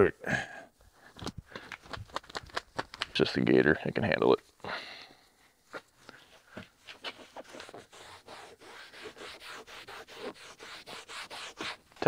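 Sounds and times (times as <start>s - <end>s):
wipe scratching on textured plastic: 6.2s - 12.0s.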